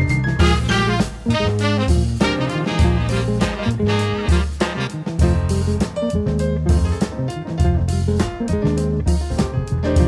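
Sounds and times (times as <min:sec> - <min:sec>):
low bass notes: 0:00.0 - 0:10.0
sharp drum beats: 0:00.0 - 0:10.0
trumpet and saxophones: 0:00.4 - 0:05.3.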